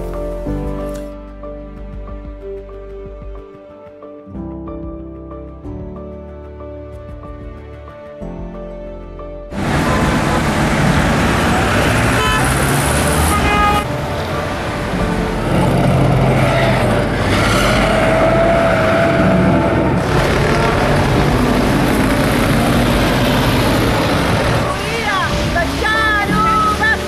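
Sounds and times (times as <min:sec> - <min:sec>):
road traffic: 0:09.5 - 0:27.0
car horns: 0:09.6 - 0:14.0, 0:15.6 - 0:22.5.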